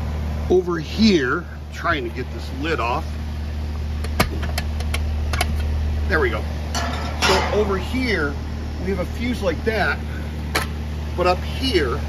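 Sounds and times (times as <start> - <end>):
air conditioner condenser humming: 0.0 - 12.0.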